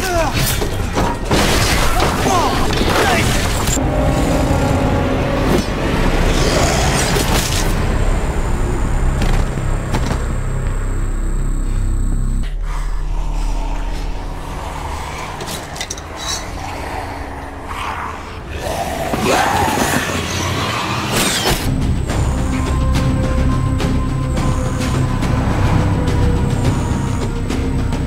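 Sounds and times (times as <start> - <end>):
dramatic soundtrack music: 0.0 - 28.0
low rumbling effects: 2.6 - 28.0.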